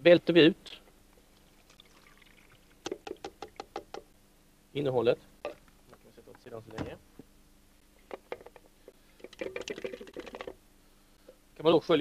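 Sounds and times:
plastic colander rattling: 0:09.2 - 0:10.6.

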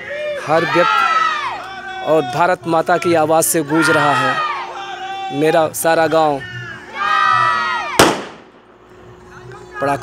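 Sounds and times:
firecracker bang: 0:08.0 - 0:08.8.

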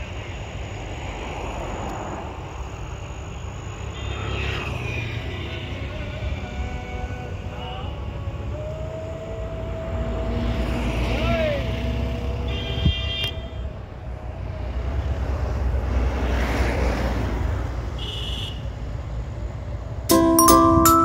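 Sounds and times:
vehicle engine rumble: 0:04.8 - 0:16.1
vehicle horn tooting: 0:12.4 - 0:13.7, 0:18.0 - 0:18.6.

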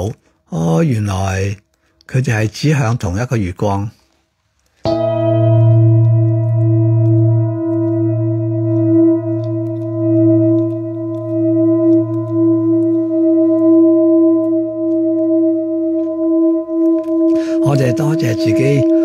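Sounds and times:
metal singing bowl ringing: 0:04.9 - 0:19.0.

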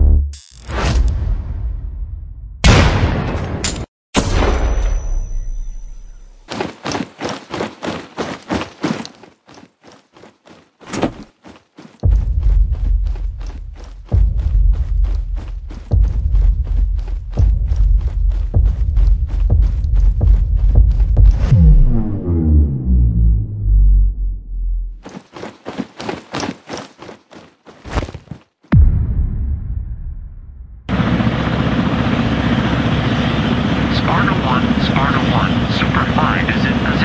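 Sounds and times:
heavy low thumps: 0:12.0 - 0:24.9, 0:28.7 - 0:30.9.

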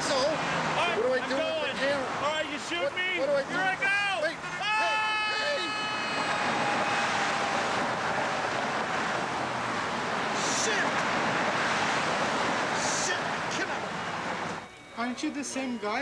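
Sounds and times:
man yelling: 0:02.9 - 0:07.0
man screaming: 0:03.9 - 0:07.6.

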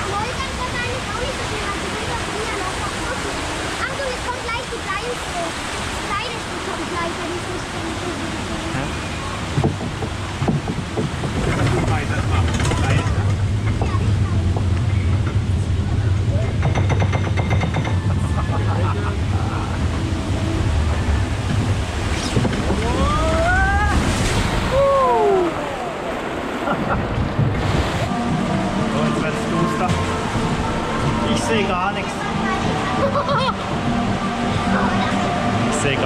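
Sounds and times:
low conveyor rumble: 0:00.0 - 0:36.0
rushing water: 0:00.0 - 0:36.0
rapid clattering: 0:09.6 - 0:18.3.

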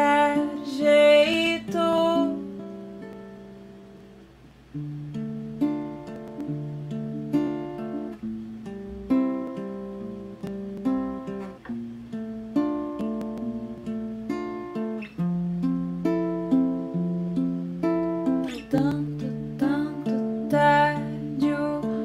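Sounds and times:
acoustic guitar chords: 0:00.0 - 0:22.0.

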